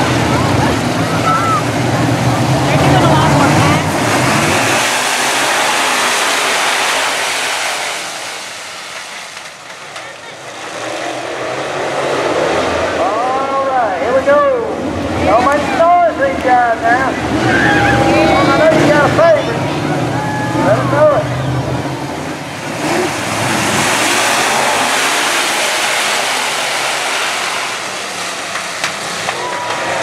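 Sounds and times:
race car engines passing: 0.0 - 30.0.

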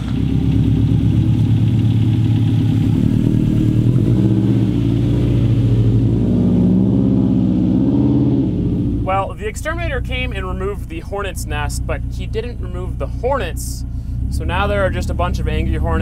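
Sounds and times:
rally car engine running: 0.0 - 16.0.

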